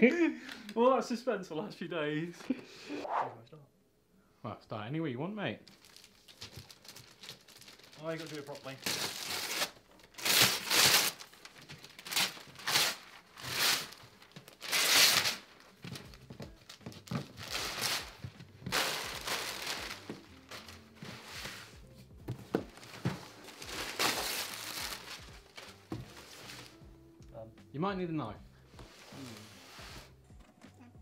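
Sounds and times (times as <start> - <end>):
wrapping paper ripping and crumpling: 5.7 - 21.8, 22.7 - 26.8, 28.9 - 30.1.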